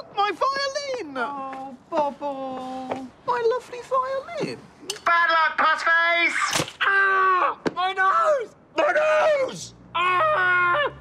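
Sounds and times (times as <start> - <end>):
man shouting and wailing: 5.2 - 11.0.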